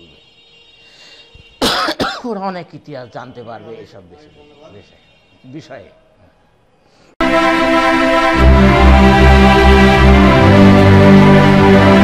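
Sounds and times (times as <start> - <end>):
elderly man coughing: 1.6 - 2.4.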